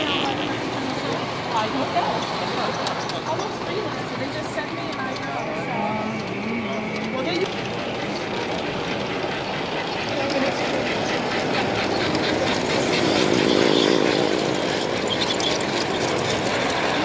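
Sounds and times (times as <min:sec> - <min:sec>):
crowd chatter: 0:00.0 - 0:17.0
model train running hum: 0:00.0 - 0:17.0
model train wheels clicking on rails: 0:00.0 - 0:17.0.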